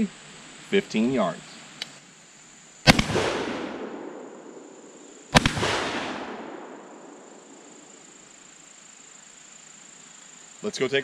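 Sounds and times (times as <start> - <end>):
shotgun shots echoing: 2.9 - 4.6, 5.3 - 7.3.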